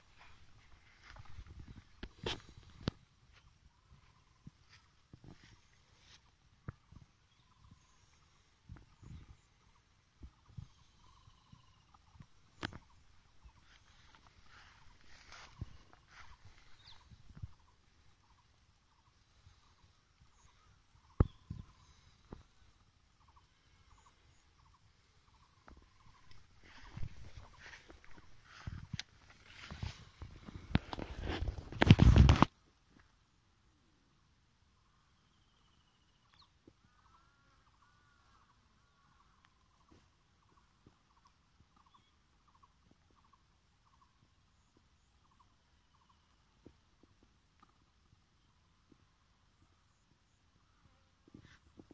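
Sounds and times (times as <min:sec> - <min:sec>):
distant bird calls: 0:00.0 - 0:32.5, 0:34.7 - 0:51.9.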